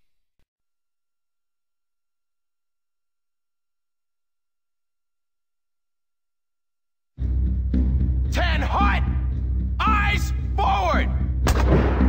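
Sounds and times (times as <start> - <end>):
man's voice: 8.2 - 11.4.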